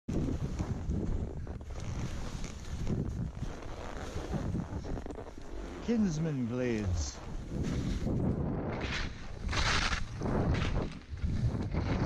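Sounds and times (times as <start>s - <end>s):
skis sliding over snow: 0.1s - 12.0s
wind buffeting microphone: 0.1s - 12.0s
man speaking: 5.8s - 7.2s.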